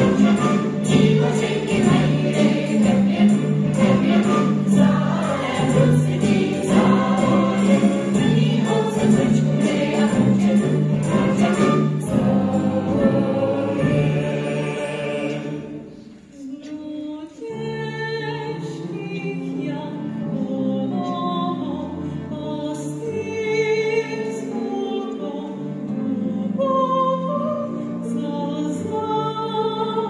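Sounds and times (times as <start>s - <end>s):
musical accompaniment with steady beat: 0.0s - 16.3s
large chorus singing: 0.0s - 16.5s.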